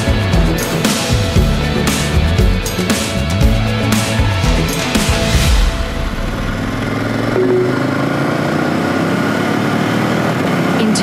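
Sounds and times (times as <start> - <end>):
background music: 0.0 - 11.0
motorcycle engine running: 0.0 - 11.0.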